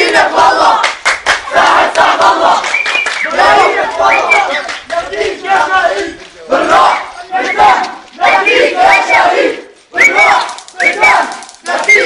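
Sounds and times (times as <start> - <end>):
crowd shouting slogans: 0.0 - 12.0.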